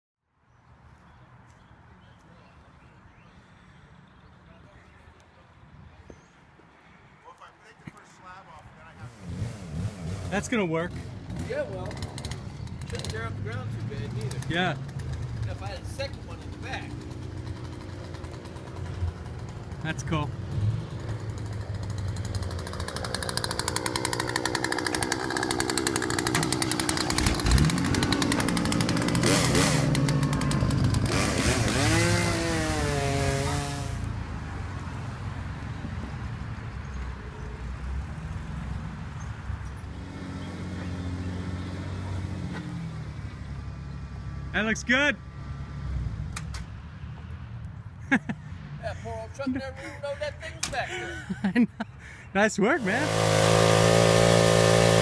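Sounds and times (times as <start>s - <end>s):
truck engine running: 21.0s - 34.0s.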